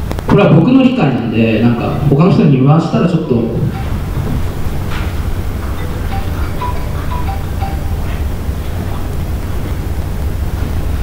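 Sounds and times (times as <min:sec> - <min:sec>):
handheld microphone rumble: 0:03.2 - 0:11.0.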